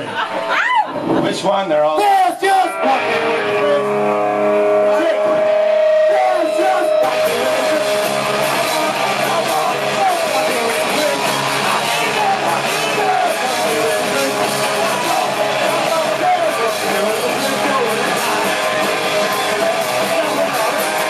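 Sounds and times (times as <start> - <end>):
live rock band: 1.9 - 21.0
held guitar note ringing: 2.7 - 10.6.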